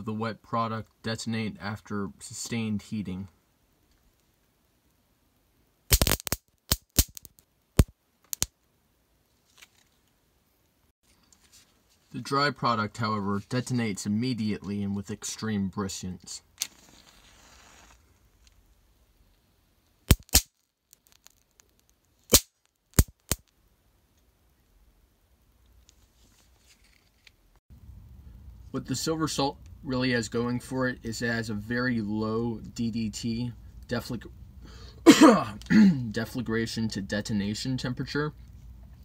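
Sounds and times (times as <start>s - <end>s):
sharp detonation cracks: 5.9s - 7.2s
sharp explosive crack: 5.9s - 8.5s, 20.1s - 20.5s.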